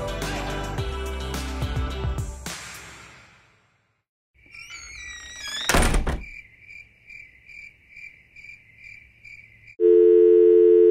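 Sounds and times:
telephone dial tone: 9.8s - 10.9s.

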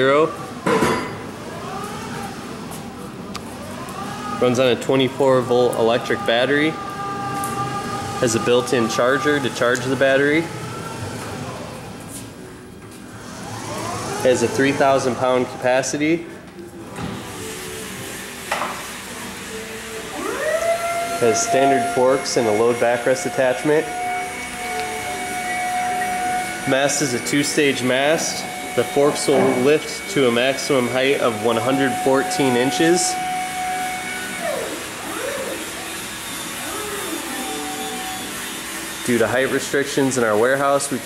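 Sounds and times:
electric motor humming and whining: 3.4s - 12.0s, 13.1s - 16.2s, 17.0s - 41.0s.

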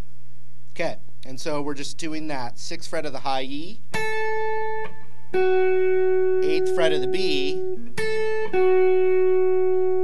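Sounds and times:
clean electric guitar notes: 3.9s - 10.0s.

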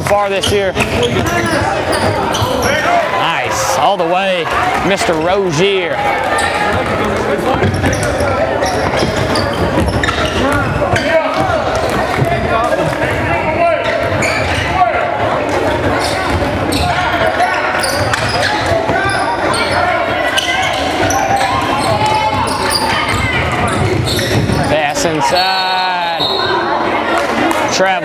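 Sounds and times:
echoing voices of players and crowd: 0.0s - 28.0s.

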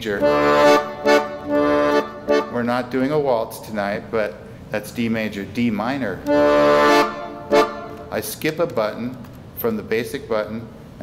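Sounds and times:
accordion bass chord: 0.0s - 3.1s, 6.2s - 8.2s.

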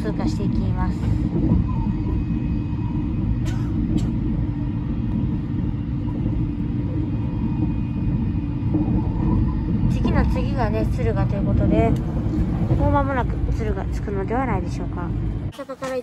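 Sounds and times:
train wheels rumbling on rail: 0.0s - 16.0s.

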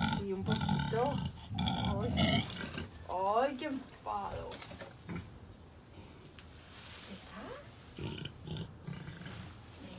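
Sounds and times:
woman speaking: 0.0s - 2.4s, 3.1s - 4.6s.

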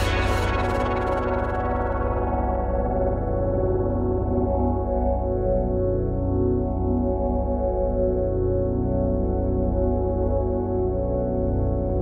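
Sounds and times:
sustained synth chord pulsing: 0.0s - 7.1s.

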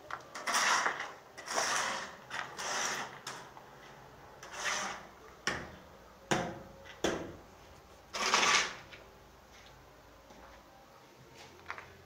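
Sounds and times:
tool cutting into concrete wall: 0.4s - 3.4s, 4.4s - 5.0s, 8.2s - 8.8s.

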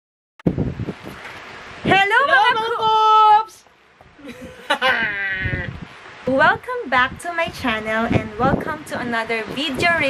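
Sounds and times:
man's bleat-like laugh: 4.2s - 5.7s.

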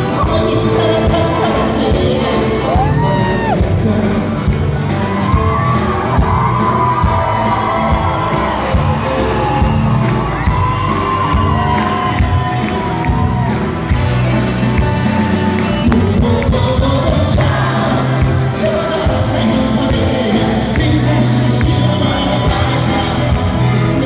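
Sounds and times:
live pop band music: 0.0s - 24.0s
crowd cheering and whooping: 1.5s - 3.8s, 4.5s - 24.0s.

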